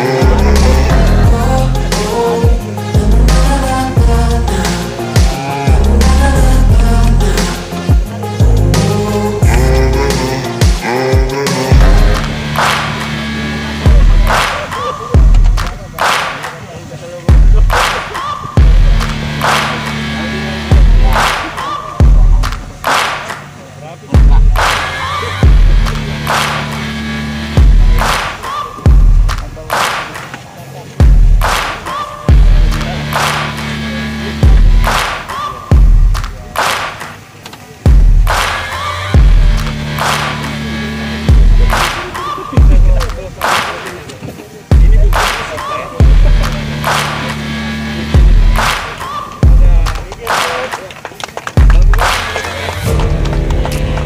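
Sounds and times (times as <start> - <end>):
bass line: 0.0 - 30.1, 30.8 - 36.8, 37.7 - 43.8, 44.6 - 50.7, 51.6 - 54.0
deep kick drums: 10.6 - 12.6, 13.9 - 14.3, 15.2 - 15.8, 17.3 - 17.8, 18.6 - 19.2, 20.7 - 21.2, 22.0 - 22.6, 24.2 - 24.6, 25.4 - 26.1, 27.6 - 28.0, 28.9 - 29.4, 31.0 - 31.5, 32.3 - 32.9, 34.4 - 34.9, 35.7 - 36.4, 37.9 - 38.4, 39.2 - 39.8, 41.3 - 41.8, 42.6 - 43.3, 44.7 - 45.2, 46.0 - 46.6, 48.2 - 48.7, 49.4 - 50.1, 51.6 - 52.1
sharp snare hits: 11.8 - 13.1, 14.3 - 16.6, 17.5 - 20.0, 21.1 - 21.8, 22.4 - 23.5, 25.8 - 26.8, 28.0 - 28.6, 29.3 - 30.4, 31.4 - 32.0, 32.7 - 33.7, 34.8 - 37.2, 37.9 - 38.7, 39.6 - 40.5, 42.8 - 44.2, 45.1 - 47.4, 48.6 - 50.8, 51.6 - 52.5.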